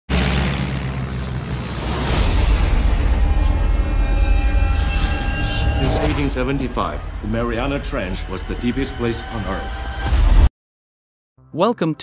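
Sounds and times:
deep steady rumble: 0.1s - 10.0s.

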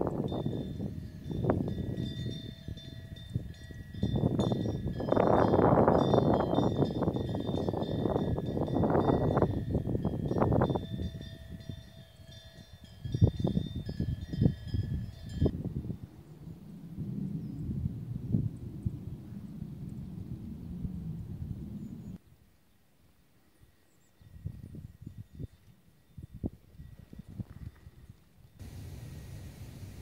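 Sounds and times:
wind on microphone: 0.0s - 22.2s, 24.2s - 30.0s
high ringing tone: 0.2s - 15.5s.

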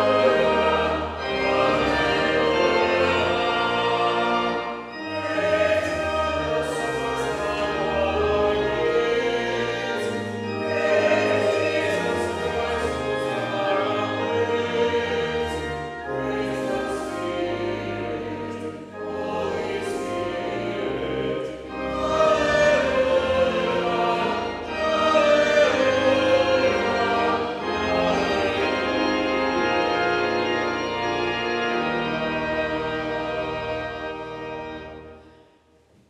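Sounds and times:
congregation singing a hymn: 0.0s - 35.4s.

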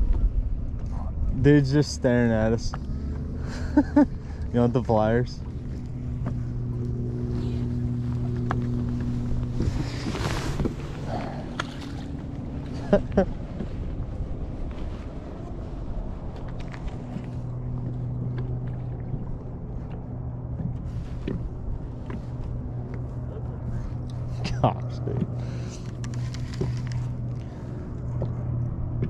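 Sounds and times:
electric trolling motor humming: 1.8s - 29.0s.

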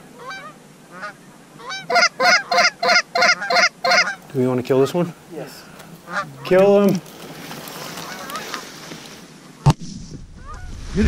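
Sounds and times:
geese honking: 0.0s - 9.7s.

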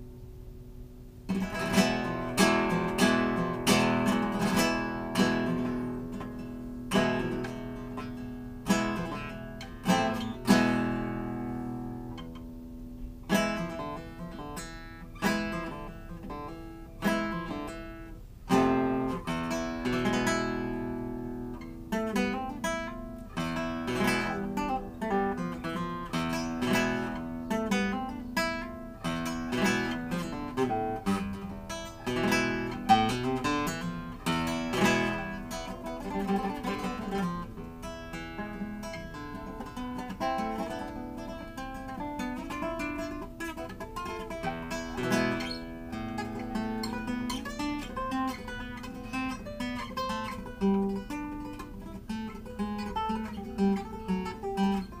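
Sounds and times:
classical guitar playing: 0.0s - 55.0s.

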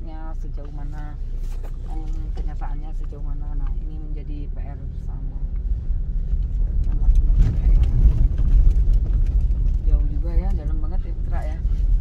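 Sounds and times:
car tyres rumbling on dirt road: 0.0s - 12.0s.

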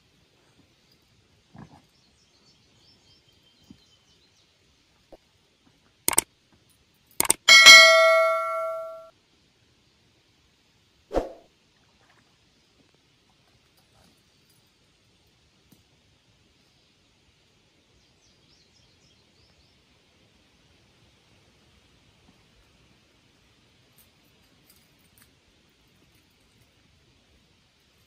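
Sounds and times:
sharp clicks: 7.2s - 9.0s
bright bell chime: 7.5s - 9.1s.

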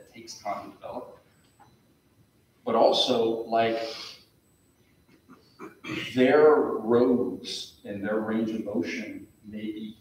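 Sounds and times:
man speaking: 0.0s - 1.2s, 2.7s - 4.1s, 5.8s - 10.0s
faint breathing: 3.8s - 4.3s.

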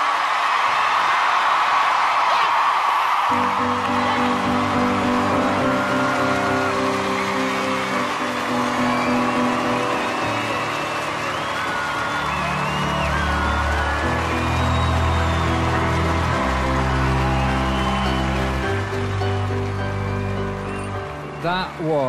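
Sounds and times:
whoops: 0.0s - 21.4s
audience cheering and applauding: 0.0s - 22.0s
music with held chords: 3.4s - 21.4s.

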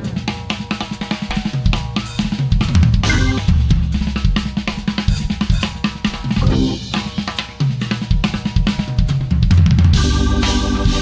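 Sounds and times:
band music: 0.0s - 11.0s
drum kit beat: 0.0s - 11.0s
heavy bass line: 2.8s - 4.1s, 6.3s - 7.2s.

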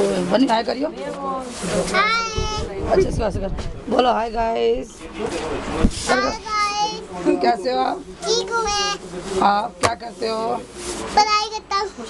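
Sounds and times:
voices in conversation: 0.0s - 12.0s.

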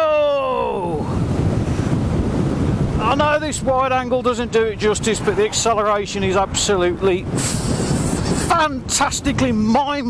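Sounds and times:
person shouting: 0.0s - 1.1s
wind rushing over microphone: 0.0s - 10.0s.

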